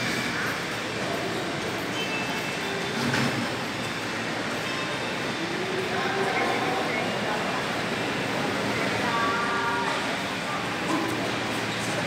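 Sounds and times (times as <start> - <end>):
terminal rumble and hiss: 0.0 - 12.0.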